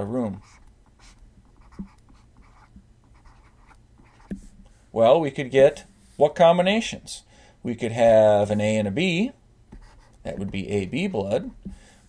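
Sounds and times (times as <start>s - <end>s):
stylus scratching on tablet: 0.3s - 4.4s, 9.8s - 10.7s.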